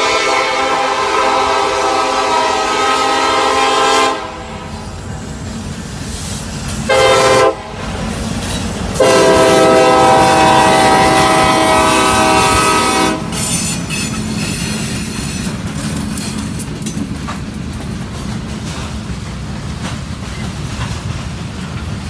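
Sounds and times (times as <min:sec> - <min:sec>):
locomotive air horn blasts: 0:00.0 - 0:04.8, 0:06.8 - 0:07.8, 0:09.0 - 0:14.1
locomotive rumble: 0:00.0 - 0:22.0
train wheels on rails: 0:00.0 - 0:22.0.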